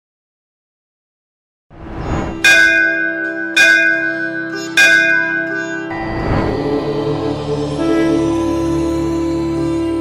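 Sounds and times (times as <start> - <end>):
bell strikes ringing: 2.3 - 6.3
sustained drone: 4.1 - 10.0.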